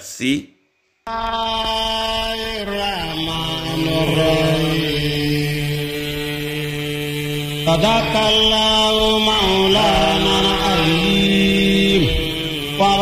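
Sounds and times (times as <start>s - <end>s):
man chanting recitation: 2.2s - 13.0s.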